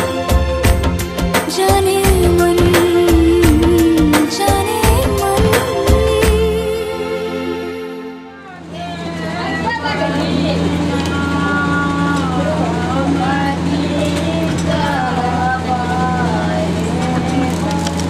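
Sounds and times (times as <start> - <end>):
low electrical hum: 1.8 - 18.0.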